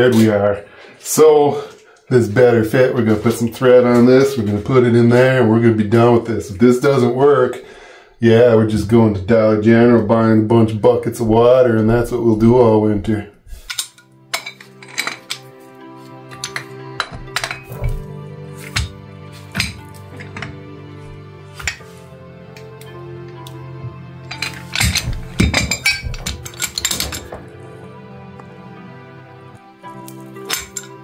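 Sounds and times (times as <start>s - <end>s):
background music: 0.0s - 31.0s
wrench clanking on metal pipe: 13.7s - 15.5s, 16.3s - 21.9s, 24.3s - 27.7s, 30.3s - 31.0s.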